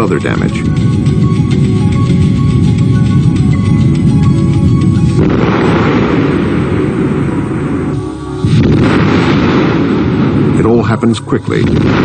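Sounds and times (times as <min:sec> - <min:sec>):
music with steady tones: 0:00.0 - 0:12.0.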